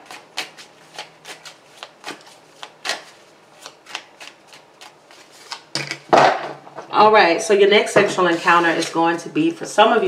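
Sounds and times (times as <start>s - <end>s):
cards rustling while shuffled: 0.0s - 5.7s
cards slapping: 0.1s - 6.4s.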